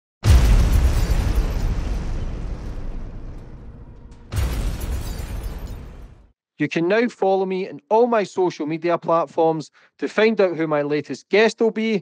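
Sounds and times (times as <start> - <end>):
explosion boom with deep rumble: 0.2 - 6.3.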